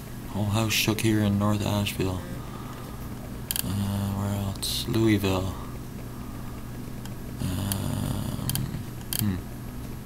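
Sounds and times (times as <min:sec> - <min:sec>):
man humming with closed mouth: 0:07.4 - 0:09.6.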